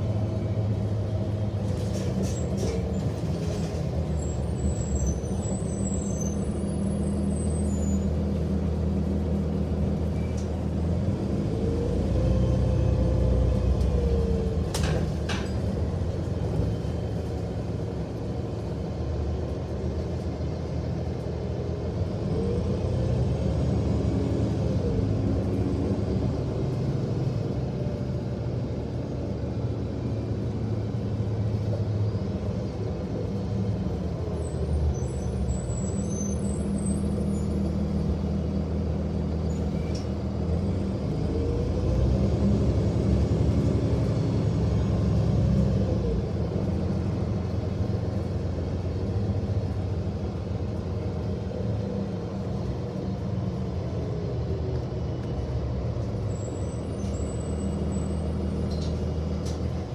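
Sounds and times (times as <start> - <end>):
bus drivetrain whine: 0.0 - 59.9
bus engine rumbling: 0.0 - 59.9.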